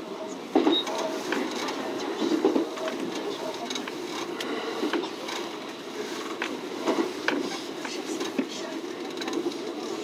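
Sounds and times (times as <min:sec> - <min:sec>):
train wheels rumbling on rail: 0:00.0 - 0:10.0.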